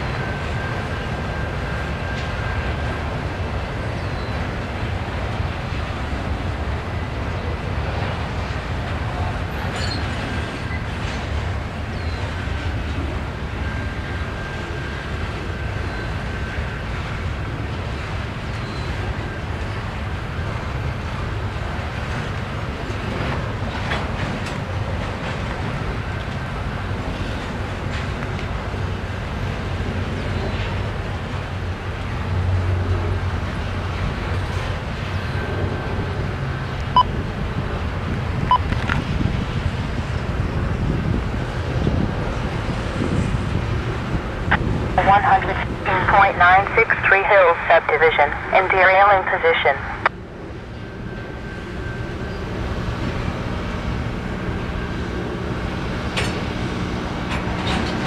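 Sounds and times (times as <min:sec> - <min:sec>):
freight train wheels rumbling: 0:00.0 - 0:47.5, 0:48.1 - 0:58.0.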